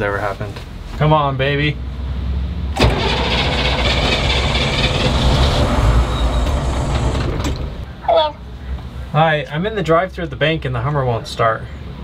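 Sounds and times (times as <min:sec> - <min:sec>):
starter motor cranking engine: 0:02.8 - 0:07.8.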